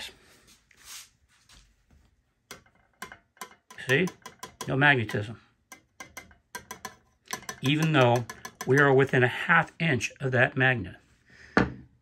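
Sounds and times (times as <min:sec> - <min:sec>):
screwdriver tapping on sheet steel: 0:02.5 - 0:09.3
faint breath: 0:11.2 - 0:11.9.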